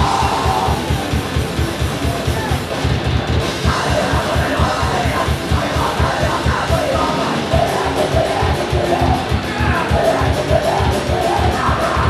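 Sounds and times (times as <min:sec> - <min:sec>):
singer yelling vocals: 0:00.0 - 0:01.2, 0:03.6 - 0:12.0
bass guitar: 0:00.0 - 0:12.0
drum kit beat: 0:00.0 - 0:12.0
electric guitar: 0:00.0 - 0:12.0.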